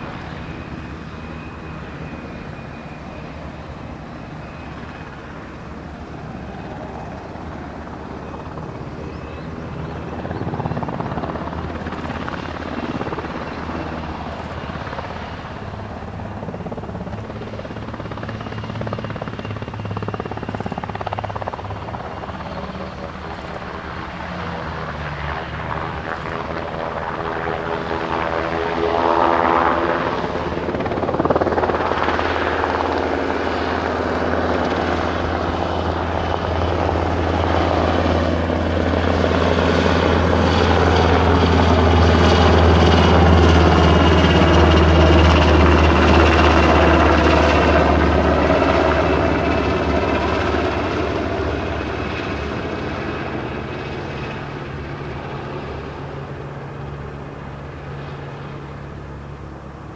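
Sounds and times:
helicopter rotor beating: 0:00.0 - 0:59.9
helicopter turbine engine whine: 0:00.0 - 0:59.9.

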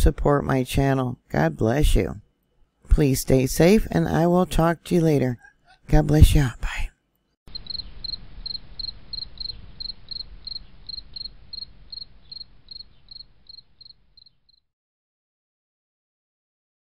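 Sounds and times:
faint low hiss: 0:06.3 - 0:14.5
cricket chirping: 0:07.5 - 0:14.6.

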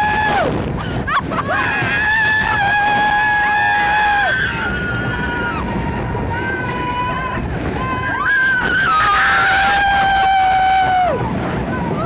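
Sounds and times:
wind rushing: 0:00.0 - 0:12.0
riders screaming: 0:01.2 - 0:11.3.

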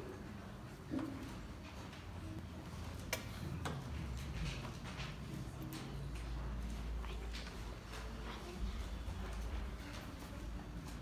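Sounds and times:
low room noise: 0:00.0 - 0:11.0
faint clicks and taps: 0:00.9 - 0:11.0.

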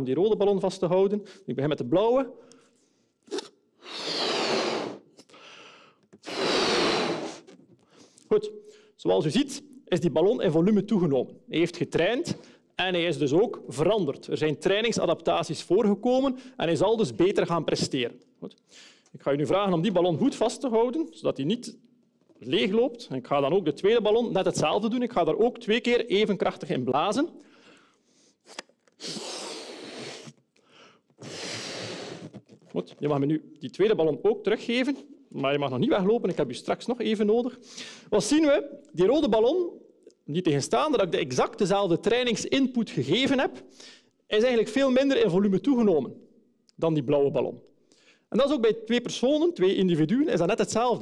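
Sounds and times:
breaths blown into balloon: 0:03.2 - 0:07.6, 0:28.2 - 0:32.7.

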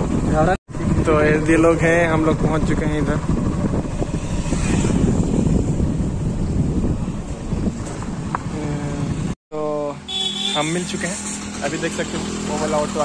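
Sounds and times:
wind buffeting microphone: 0:00.0 - 0:09.4
motorcycle engine and road rumble: 0:00.0 - 0:13.0.

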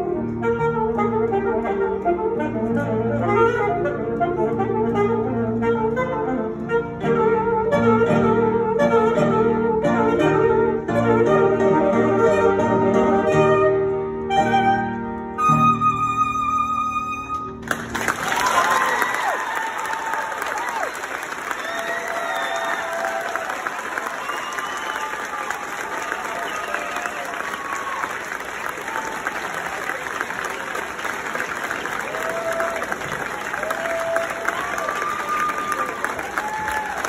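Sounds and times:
audience applauding: 0:17.6 - 0:37.0
whoops and voices: 0:21.6 - 0:28.2, 0:33.5 - 0:37.0.

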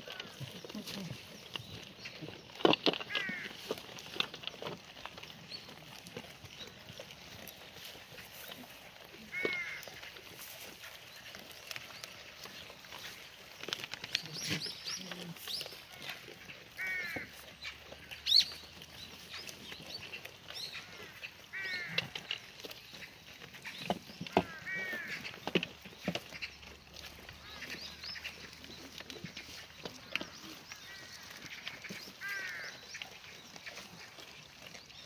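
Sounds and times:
birds chirping: 0:00.0 - 0:08.7, 0:09.3 - 0:35.0
faint clicks and rustling: 0:00.0 - 0:35.0.

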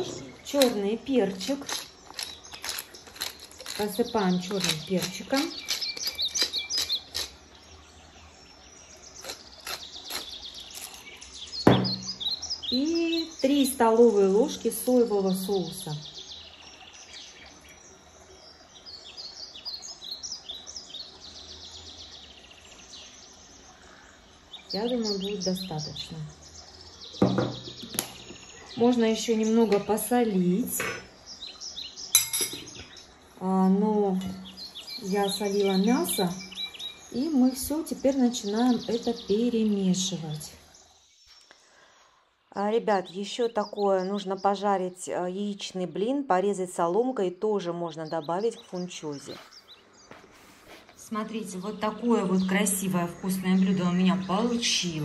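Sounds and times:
small bird chirping: 0:00.0 - 0:13.6, 0:31.2 - 0:41.9
small birds chirping: 0:00.0 - 0:55.0
spoon clinking on a board: 0:32.2 - 0:32.8.

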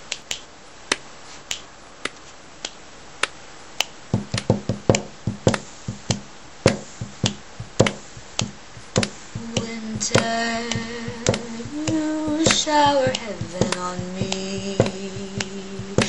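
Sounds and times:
sharp hand claps: 0:03.8 - 0:16.0
fingers tapping on tabletop: 0:04.2 - 0:16.0.

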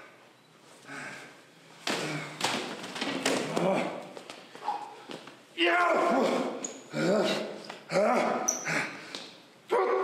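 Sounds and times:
man yelling: 0:05.6 - 0:07.4.

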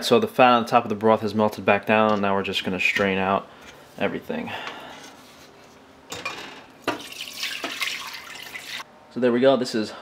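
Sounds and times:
liquid splashing: 0:06.9 - 0:08.8.

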